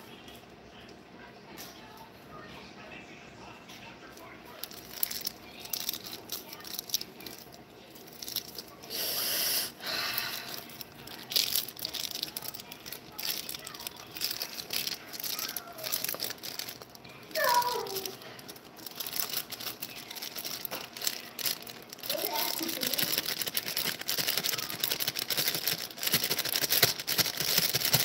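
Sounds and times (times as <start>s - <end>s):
plastic pouch crinkling and rattling: 4.2s - 8.8s, 9.8s - 28.0s.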